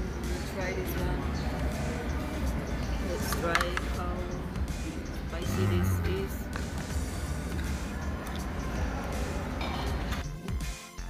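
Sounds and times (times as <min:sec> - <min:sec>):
background music: 0:00.0 - 0:11.0
voices: 0:05.3 - 0:06.5.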